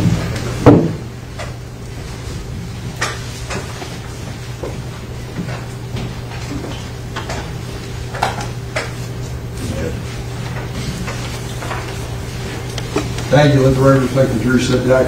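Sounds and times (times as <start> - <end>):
electrical hum: 0.0 - 15.0.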